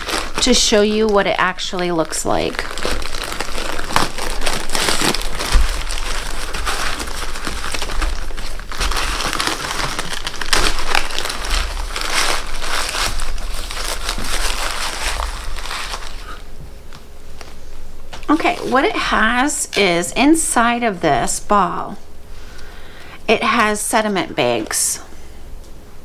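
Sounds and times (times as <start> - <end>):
plastic bag crinkling: 0.0 - 20.0.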